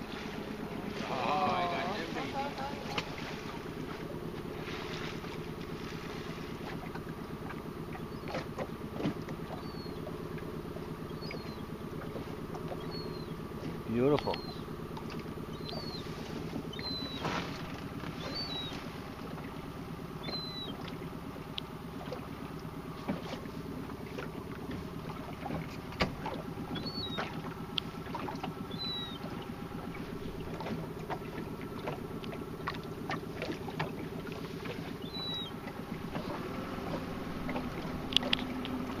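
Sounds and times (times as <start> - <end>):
boat engine idling: 0.0 - 39.0
water noise: 0.0 - 39.0.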